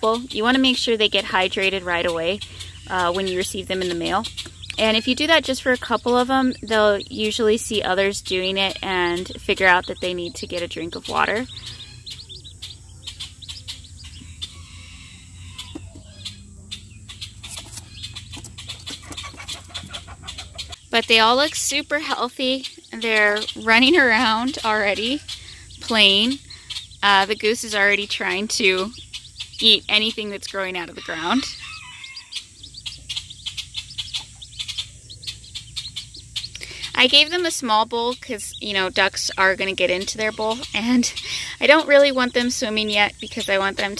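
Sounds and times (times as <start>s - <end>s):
ducklings peeping: 0.0s - 43.9s.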